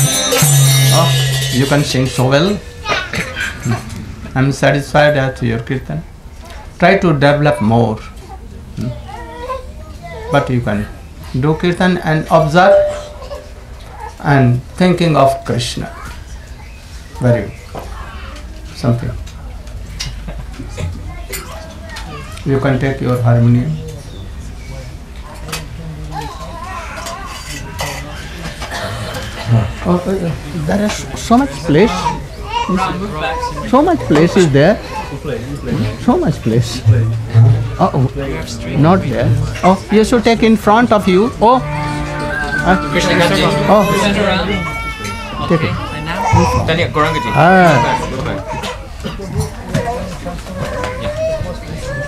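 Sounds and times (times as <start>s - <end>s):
indistinct voices: 0.0s - 18.6s, 23.5s - 52.0s
people moving about: 0.0s - 52.0s.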